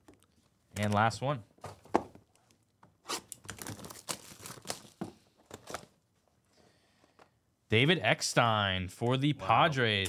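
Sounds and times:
card packaging rustling: 3.2 - 6.0.

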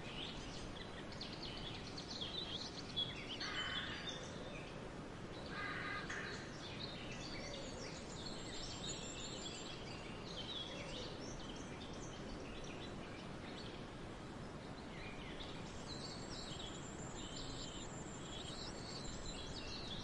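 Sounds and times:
songbirds chirping and trilling: 0.0 - 20.0
steady background hiss: 0.0 - 20.0.

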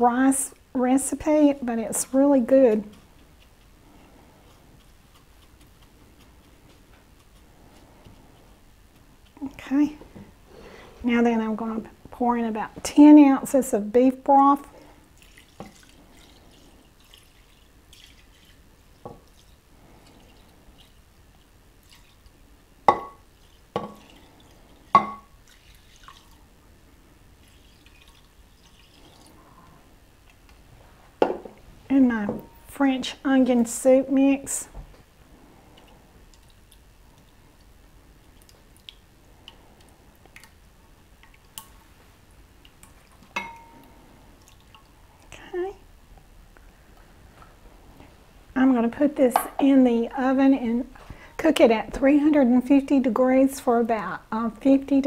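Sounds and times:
broth trickling into glass dish: 14.8 - 26.5, 27.4 - 30.4, 42.6 - 45.1.

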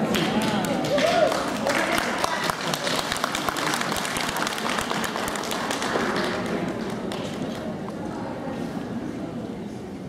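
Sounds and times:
audience applauding: 0.0 - 7.7
crowd voices: 0.0 - 10.0.

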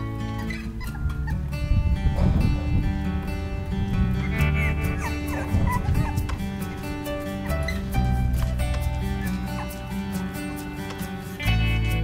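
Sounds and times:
background music: 0.0 - 12.0
puppies whining: 0.2 - 1.8, 4.1 - 11.0.

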